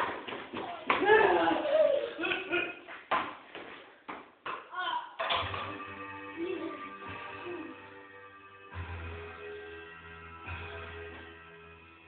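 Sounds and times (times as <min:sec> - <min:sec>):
music: 0:05.2 - 0:12.0.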